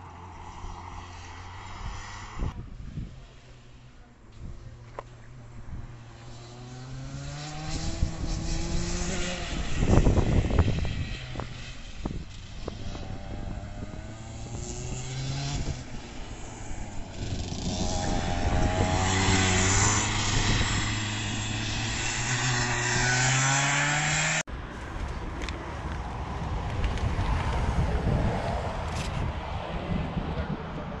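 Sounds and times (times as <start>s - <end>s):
kart engine revving: 6.0s - 24.5s.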